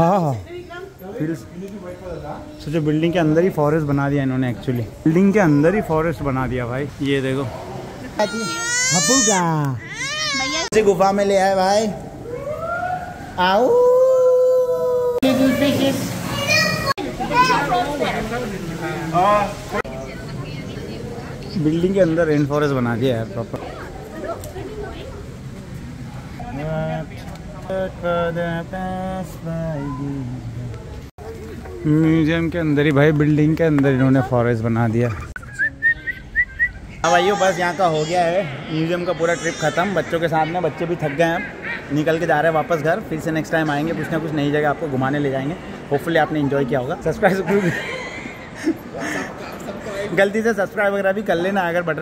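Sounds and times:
person howling: 0:13.6 - 0:15.2.

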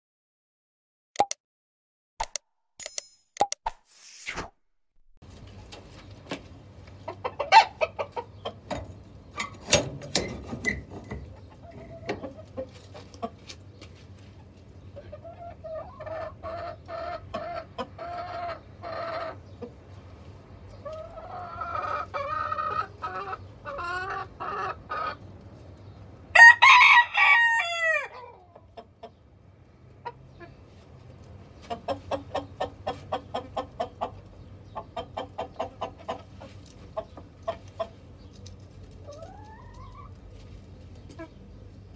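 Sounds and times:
chickens clucking: 0:05.3 - 0:26.5, 0:27.7 - 0:41.9
rooster crowing: 0:26.3 - 0:28.2.

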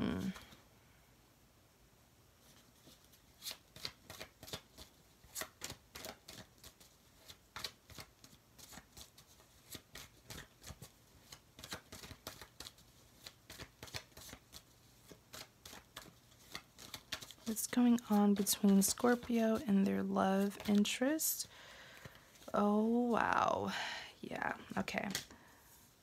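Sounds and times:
cards being shuffled: 0:02.4 - 0:22.6, 0:24.5 - 0:25.4.

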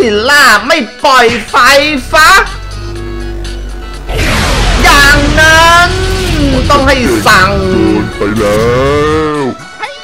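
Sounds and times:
background music: 0:00.0 - 0:10.0
monster cry: 0:02.0 - 0:09.1.

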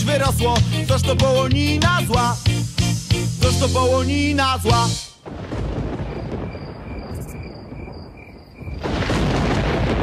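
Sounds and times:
wind rumbling on microphone: 0:05.3 - 0:10.0.

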